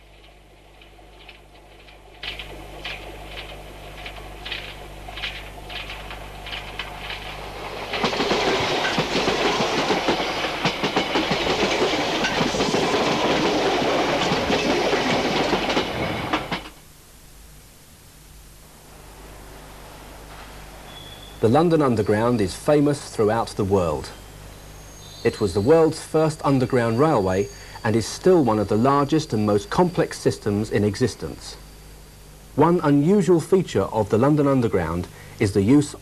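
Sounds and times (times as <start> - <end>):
train rumbling past: 0.0 - 16.8
train wheels clicking over rail joints: 0.0 - 16.8.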